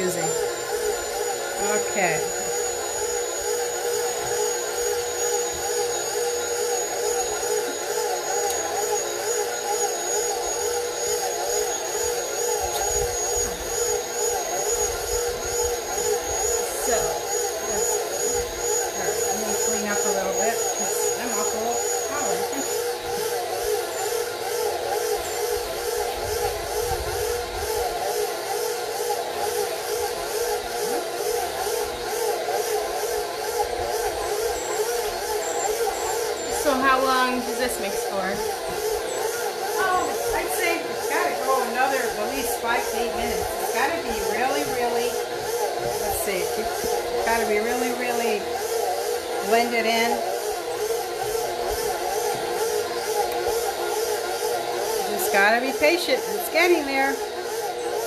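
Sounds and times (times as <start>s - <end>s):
stand mixer motor kneading dough: 0.0s - 58.0s.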